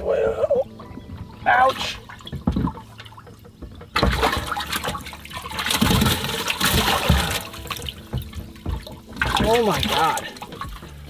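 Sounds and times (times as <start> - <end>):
water splashing and sloshing: 0.0 - 11.0.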